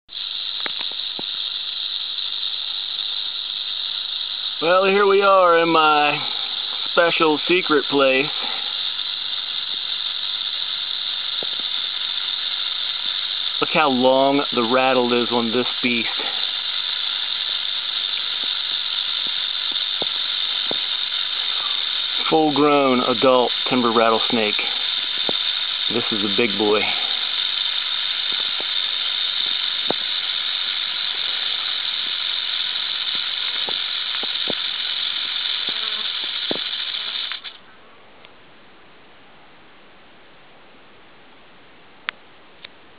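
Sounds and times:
rattlesnake rattling: 0.0 - 37.7.

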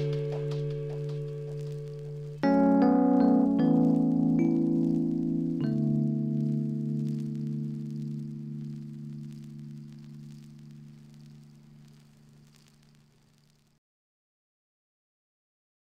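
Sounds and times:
piano chords ringing: 0.0 - 11.9.

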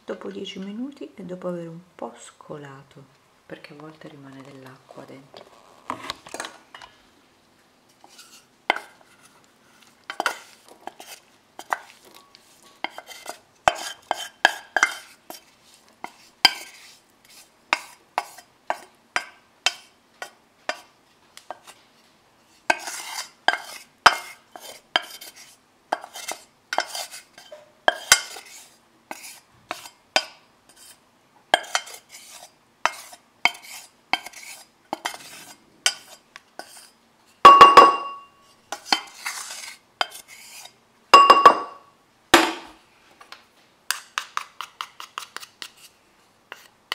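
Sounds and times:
wooden spoon scraping a saucepan: 7.9 - 20.9, 21.5 - 31.0, 31.6 - 41.7, 44.0 - 46.8
pot ringing from a knock: 37.5 - 38.3.

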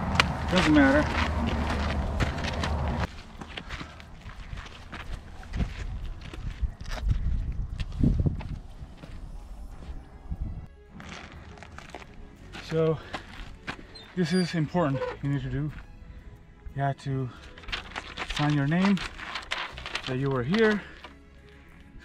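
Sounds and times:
footsteps crunching on rocky trail: 0.0 - 10.0, 10.6 - 14.7, 17.3 - 21.9
background music: 8.5 - 22.0.

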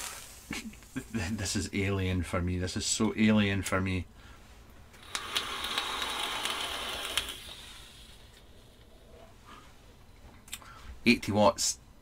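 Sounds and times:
airy hiss of air drawn: 0.0 - 0.6, 5.0 - 8.3
coil crackling and sizzling: 0.0 - 1.4, 5.0 - 8.8.

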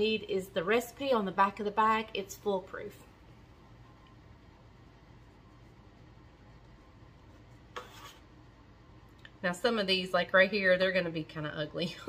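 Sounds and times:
low steady hum: 0.0 - 12.0
soft rub: 5.2 - 8.4.

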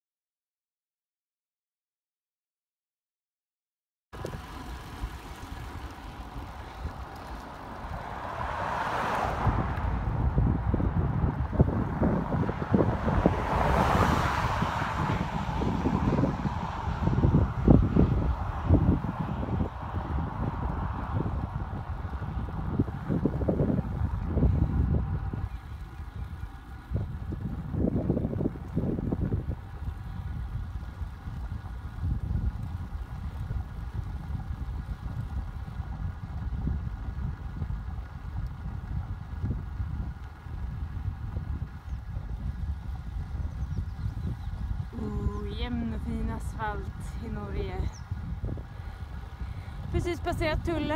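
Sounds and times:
wind buffeting microphone: 4.2 - 50.9.

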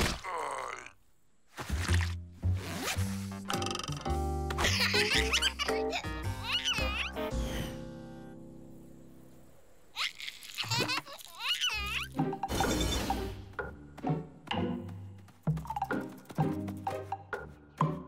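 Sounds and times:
cartoon music: 3.5 - 7.3.

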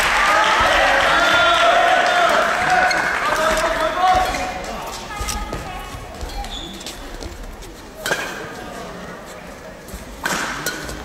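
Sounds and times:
shoes thudding and squeaking on floor: 4.1 - 7.8
rackets striking shuttlecock: 10.2 - 11.0.

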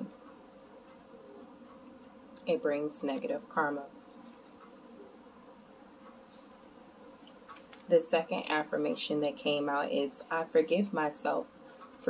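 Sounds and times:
insect chirping: 3.6 - 5.1.

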